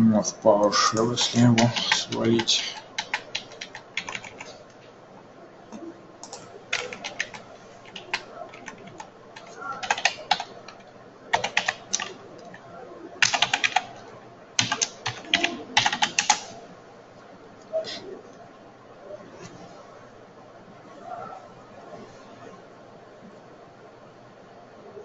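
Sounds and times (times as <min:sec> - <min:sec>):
computer keyboard typing: 0:00.6 - 0:04.8, 0:05.7 - 0:12.6, 0:13.2 - 0:14.0, 0:14.6 - 0:16.6.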